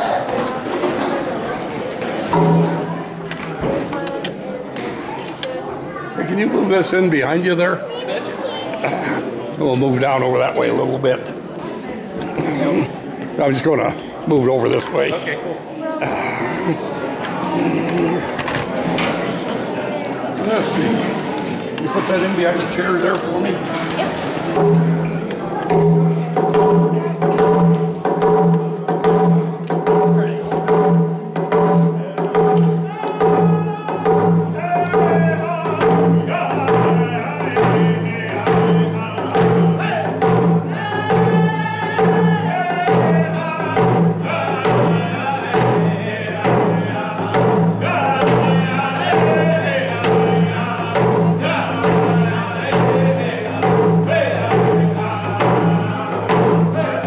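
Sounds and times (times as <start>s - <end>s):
frame drums beating: 2.2s - 4.0s, 21.9s - 57.0s
men singing together: 32.8s - 57.0s.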